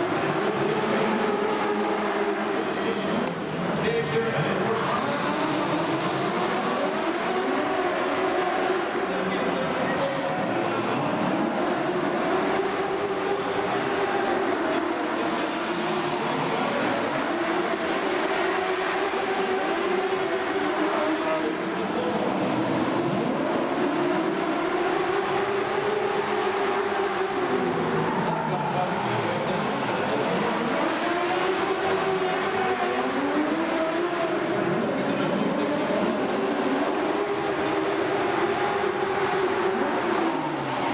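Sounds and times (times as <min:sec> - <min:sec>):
racing sidecar engines: 0:00.0 - 0:40.9.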